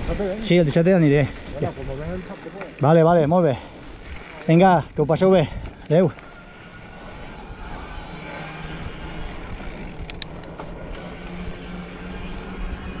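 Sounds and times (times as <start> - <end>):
bicycle tyres on asphalt: 0.0 - 13.0
low engine hum: 0.0 - 13.0
rushing wind: 0.0 - 13.0.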